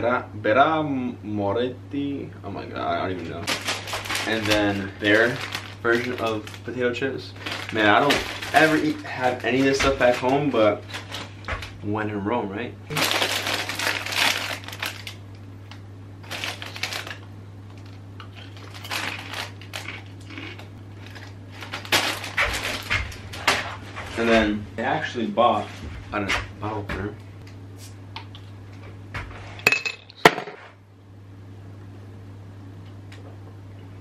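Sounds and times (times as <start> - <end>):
chip bag crinkling: 3.5 - 11.7, 12.9 - 23.3.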